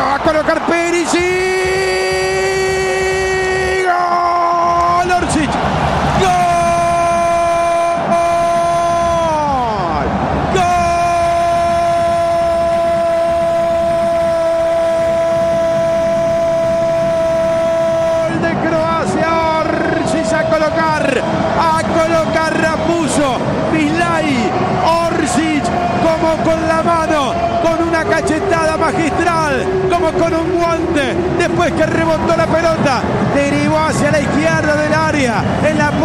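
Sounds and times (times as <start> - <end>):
commentator's drawn-out goal cry: 6.2 - 36.0.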